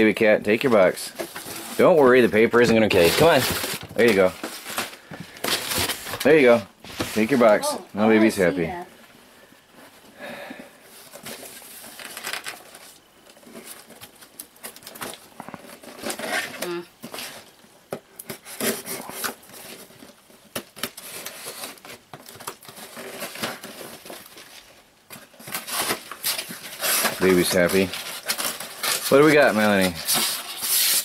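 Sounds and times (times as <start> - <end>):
cardboard scraping and rustling: 0.8 - 7.6, 10.8 - 17.5, 18.2 - 31.0
packing tape tearing: 2.8 - 6.4, 11.0 - 17.5, 18.2 - 31.0.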